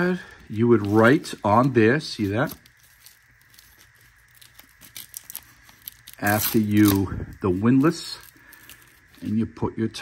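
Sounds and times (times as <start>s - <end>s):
nylon strap rustling: 0.2s - 9.3s.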